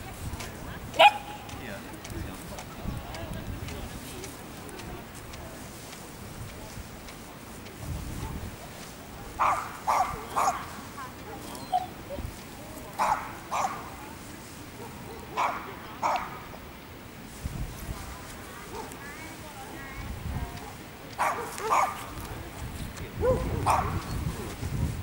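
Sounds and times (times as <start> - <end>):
dog barking: 1.0 - 1.4, 9.4 - 11.9, 13.0 - 13.9, 14.8 - 16.4, 20.6 - 22.0, 23.2 - 24.1.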